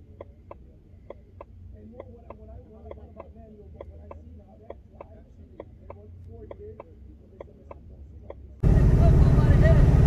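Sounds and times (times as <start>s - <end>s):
sharp ticking: 0.0s - 8.6s
faint distant voices: 0.0s - 10.0s
low hum: 8.4s - 10.0s
car engine running loud: 8.6s - 10.0s.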